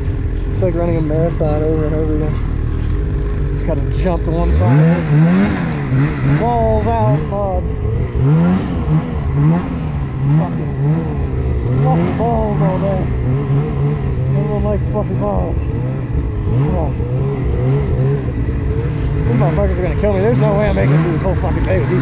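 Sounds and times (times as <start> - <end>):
snowmobile engine revving: 0.0 - 22.0.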